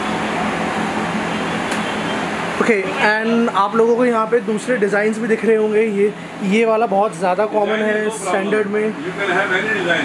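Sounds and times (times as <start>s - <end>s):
mechanical hum with hiss: 0.0s - 10.0s.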